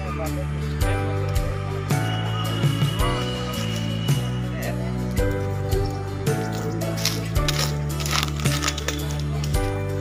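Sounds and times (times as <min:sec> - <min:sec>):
sustained bass and chords: 0:00.0 - 0:10.0
light clinking percussion: 0:00.6 - 0:10.0.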